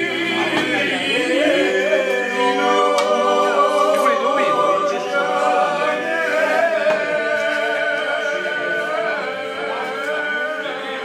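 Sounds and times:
group singing a cappella: 0:00.0 - 0:11.0.

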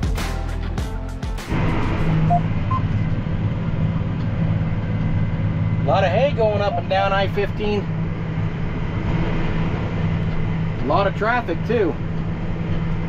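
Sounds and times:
background music with drum beat: 0:00.0 - 0:02.4
tractor engine running: 0:00.0 - 0:13.0.

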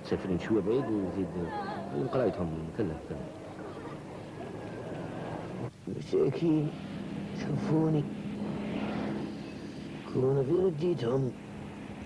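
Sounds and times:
car engine drone: 0:00.0 - 0:12.0
road noise: 0:00.0 - 0:12.0.

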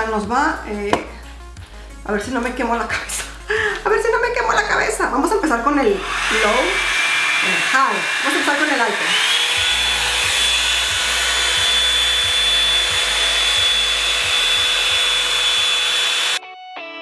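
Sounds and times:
hot-air brush blowing: 0:05.8 - 0:16.4
guitar music: 0:09.5 - 0:17.0.

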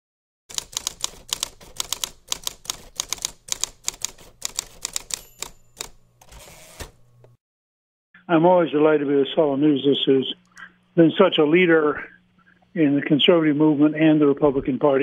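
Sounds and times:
typewriter keys striking: 0:00.5 - 0:07.0
typewriter carriage return: 0:00.5 - 0:07.1
typewriter bell ring: 0:03.9 - 0:07.0.

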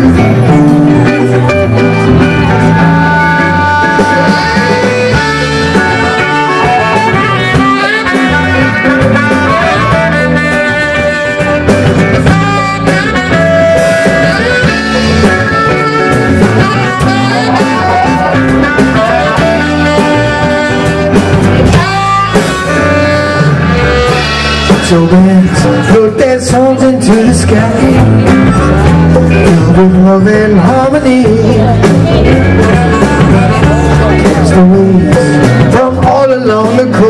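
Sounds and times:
saxophone: 0:00.0 - 0:26.0, 0:27.0 - 0:35.8
bass guitar: 0:00.0 - 0:37.0
drums: 0:00.0 - 0:37.0
electric guitar: 0:00.0 - 0:37.0
person singing: 0:00.0 - 0:37.0.

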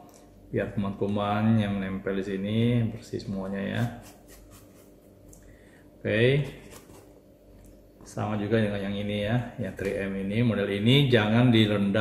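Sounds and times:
toothbrush scrubbing mask: 0:03.8 - 0:05.1.

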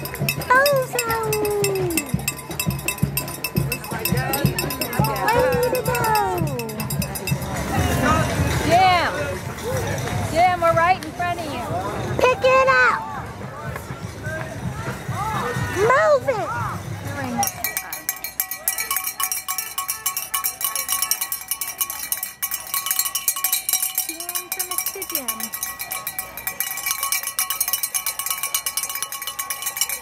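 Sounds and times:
cowbell shaken rapidly: 0:00.0 - 0:09.2, 0:17.1 - 0:30.0.

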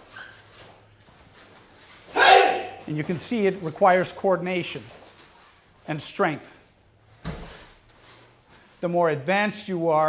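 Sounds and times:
bare feet thumping on mats: 0:07.2 - 0:08.0.

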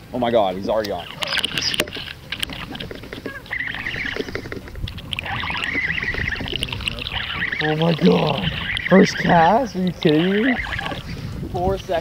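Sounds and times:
water splashing and sloshing: 0:00.6 - 0:12.0
sharp knocks and clicks: 0:00.8 - 0:05.1.

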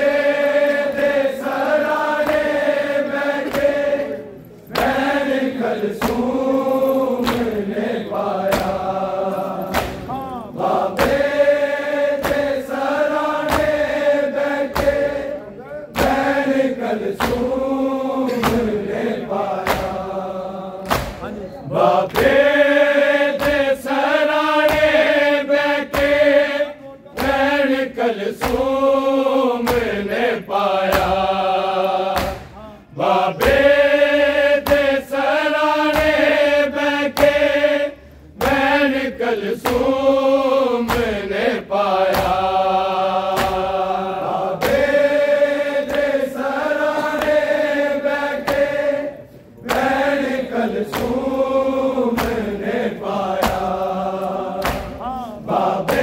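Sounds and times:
men singing lament: 0:00.0 - 0:56.0
hands striking bare chests: 0:08.4 - 0:08.9, 0:09.7 - 0:10.2, 0:10.9 - 0:11.4, 0:12.1 - 0:14.0, 0:14.6 - 0:15.2, 0:20.8 - 0:21.3, 0:32.1 - 0:32.6, 0:42.0 - 0:43.9, 0:49.6 - 0:55.2.

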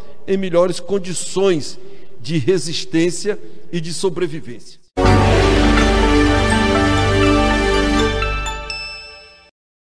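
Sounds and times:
bell-like chimes: 0:05.0 - 0:09.5
jingle music: 0:05.0 - 0:09.5.

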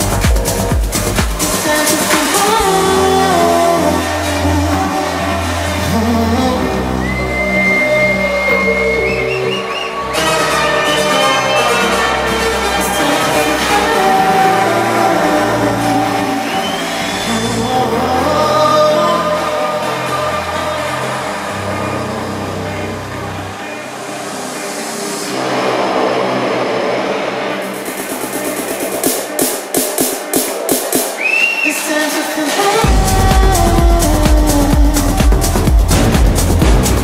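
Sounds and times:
electronic dance music: 0:00.0 - 0:37.0
high whistle-like lead tone: 0:07.0 - 0:12.2, 0:31.1 - 0:31.9
noise build rising: 0:23.2 - 0:30.9.

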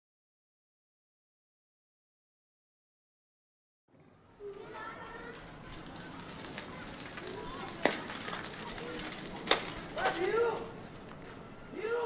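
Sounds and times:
birds calling: 0:03.9 - 0:11.8
faint voices: 0:03.9 - 0:12.0.

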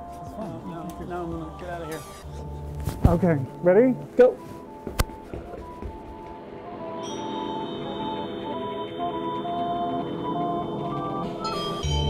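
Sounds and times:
background music of held tones: 0:00.0 - 0:12.0.

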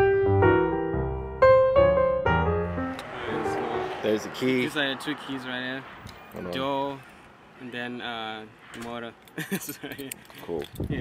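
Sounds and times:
piano background music: 0:00.0 - 0:04.2
outdoor noise: 0:02.6 - 0:11.0
faint voices: 0:03.0 - 0:08.8.

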